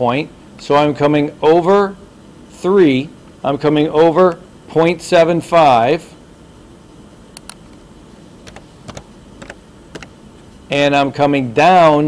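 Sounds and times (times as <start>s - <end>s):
computer keyboard keystrokes: 8.4s - 10.2s.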